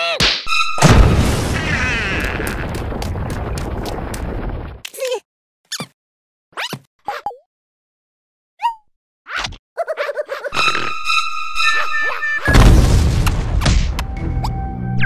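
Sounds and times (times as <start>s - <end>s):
cartoon blast: 0.8s - 2.8s.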